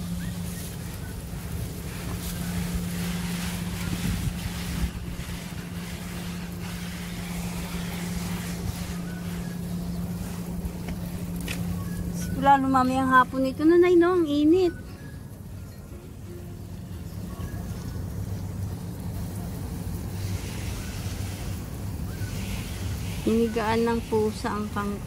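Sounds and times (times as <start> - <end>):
wind buffeting microphone: 0.0 - 15.5
steady low hum: 0.0 - 25.0.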